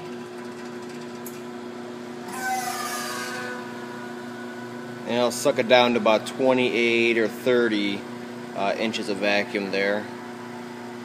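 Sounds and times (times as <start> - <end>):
vacuum pump humming: 0.0 - 11.0.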